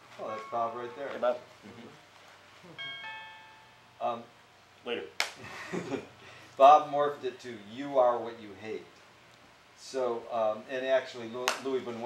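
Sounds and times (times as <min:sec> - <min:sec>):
two-note chime: 0:00.2 - 0:01.4, 0:02.7 - 0:04.2.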